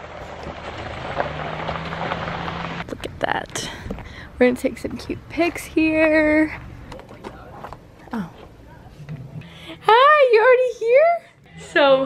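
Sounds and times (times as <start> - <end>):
car engine running: 0.0 - 2.9.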